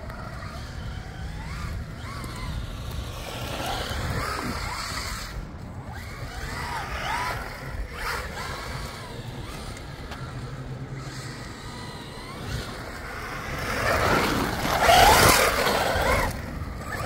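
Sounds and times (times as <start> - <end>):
electric motor whining: 0.0 - 17.0.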